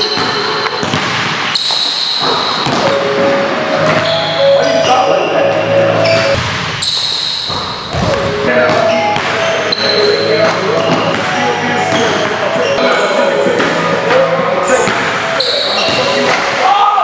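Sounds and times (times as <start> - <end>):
basketball bouncing on wooden floor: 6.1 - 6.7, 7.5 - 9.4
chatter of voices: 8.3 - 17.0.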